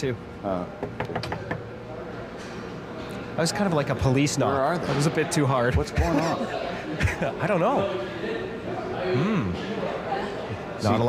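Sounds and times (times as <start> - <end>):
hard knocks on a door: 0.8 - 1.7.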